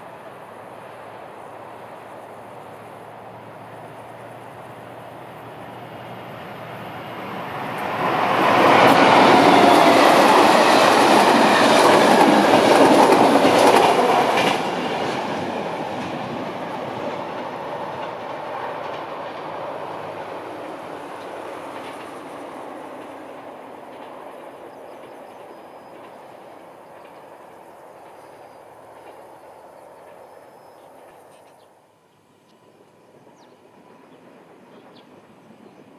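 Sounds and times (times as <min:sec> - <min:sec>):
train passing at speed: 0:00.0 - 0:35.9.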